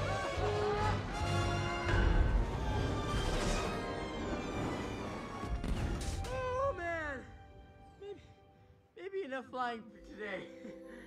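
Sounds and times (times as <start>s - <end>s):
orchestral film music: 0.0s - 11.0s.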